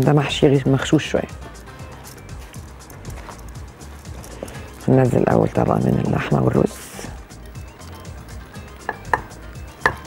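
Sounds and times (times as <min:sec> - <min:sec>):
soft background music: 0:00.0 - 0:10.0
person speaking: 0:04.3 - 0:07.2.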